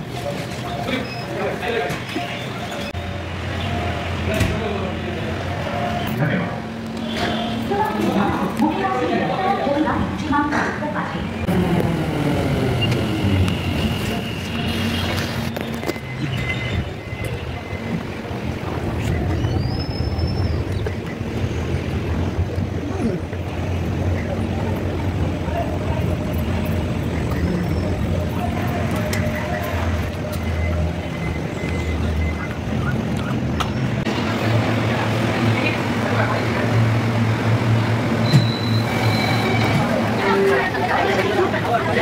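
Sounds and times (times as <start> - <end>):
train low hum: 0.0 - 42.0.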